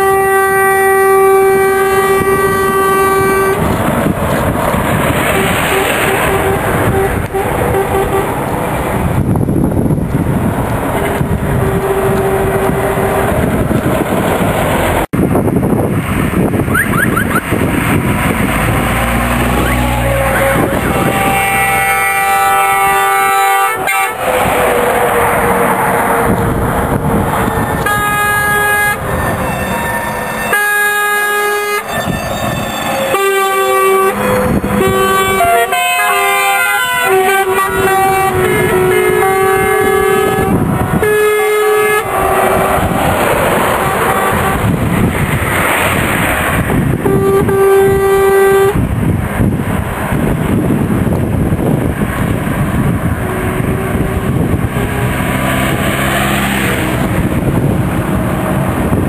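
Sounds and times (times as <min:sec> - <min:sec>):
truck horns blasting: 0:00.0 - 0:15.1, 0:16.6 - 0:49.1, 0:50.2 - 0:59.0
engines and tyres rumbling: 0:00.0 - 0:59.0.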